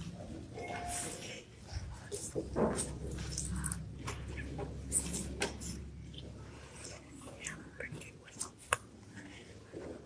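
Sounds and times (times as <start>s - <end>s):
faint whispering: 0.9s - 10.0s.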